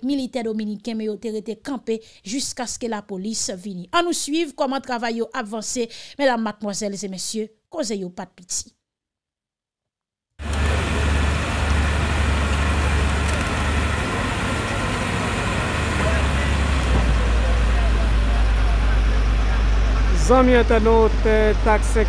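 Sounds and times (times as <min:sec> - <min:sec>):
excavator diesel engine rumbling: 0:10.4 - 0:22.0
outdoor noise: 0:10.4 - 0:22.0.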